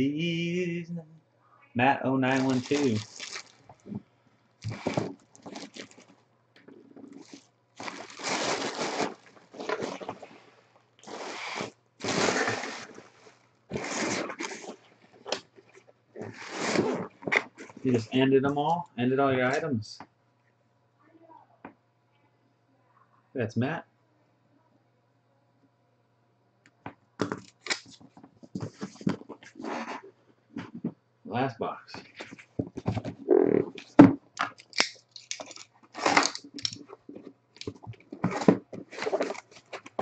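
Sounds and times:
plastic packaging crinkling: 2.2 - 4.0, 4.6 - 6.2, 6.8 - 17.9, 27.4 - 29.8, 32.0 - 40.0
scraping rustles: 4.6 - 18.1, 35.2 - 40.0.

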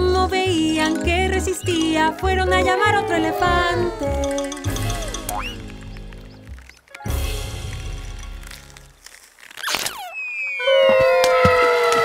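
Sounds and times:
held whistling tone sinking in pitch: 10.0 - 11.0
downward-sliding whistle: 10.0 - 11.4.

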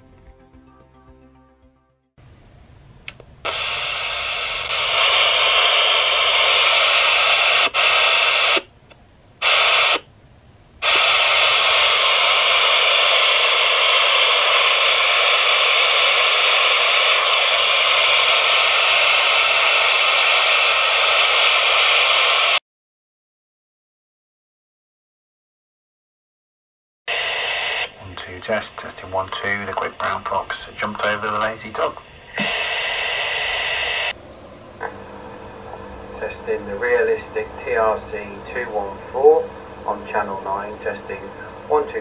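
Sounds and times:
walkie-talkie receiver static: 3.4 - 8.7, 9.4 - 10.1, 10.8 - 22.6, 27.1 - 34.2, 34.8 - 42.0.

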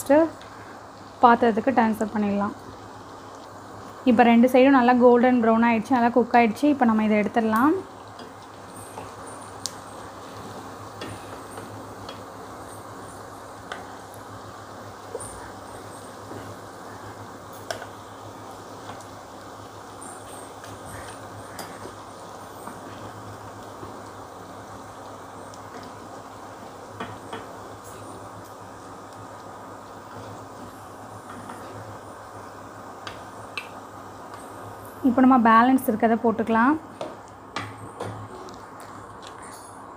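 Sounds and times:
food deep-frying in oil: 0.0 - 39.9.

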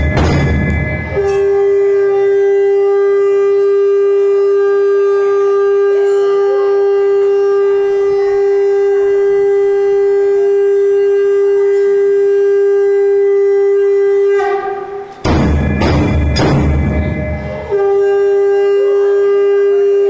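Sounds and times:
loud clattering noise: 0.0 - 1.6, 14.4 - 17.7
conch shell blown in long note: 0.0 - 20.0.

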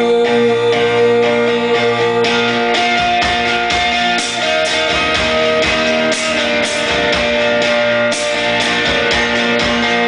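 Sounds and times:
guitar chords: 0.0 - 10.0
cymbals: 2.7 - 10.0.

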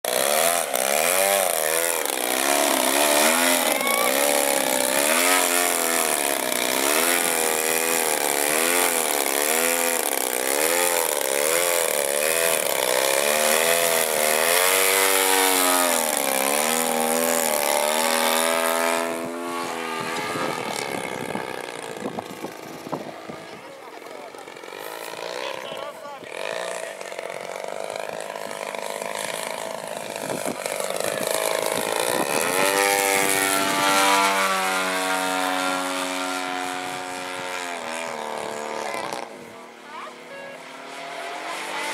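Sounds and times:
model plane propeller buzzing: 0.0 - 41.9.

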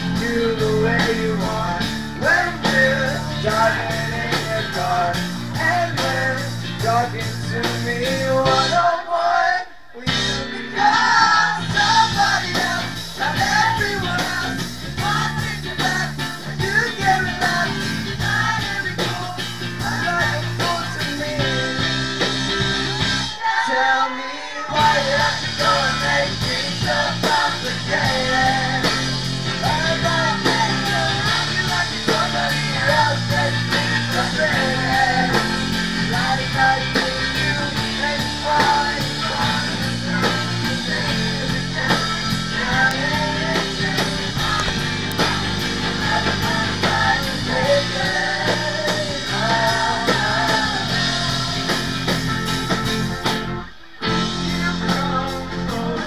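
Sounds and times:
electric guitars: 0.0 - 9.0, 9.9 - 56.0
man singing: 0.0 - 22.8, 23.6 - 52.1, 54.4 - 56.0
drums: 0.0 - 56.0.

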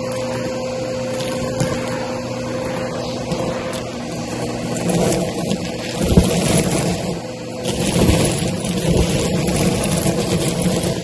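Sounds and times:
sequins rattling through nozzle: 0.0 - 11.0
vacuum cleaner running: 0.0 - 11.0.

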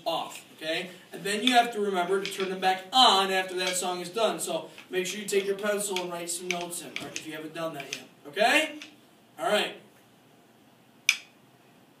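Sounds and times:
sharp click: 11.1 - 11.3.

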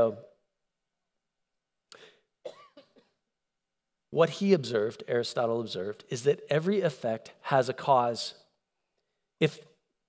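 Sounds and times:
person coughing: 2.0 - 3.2.

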